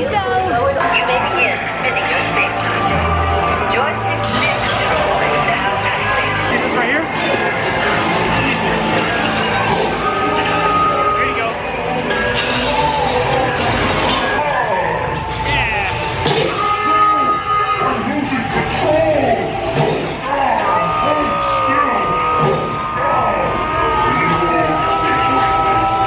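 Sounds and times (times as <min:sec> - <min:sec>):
voices: 0:00.0 - 0:26.0
electronic music: 0:00.8 - 0:26.0.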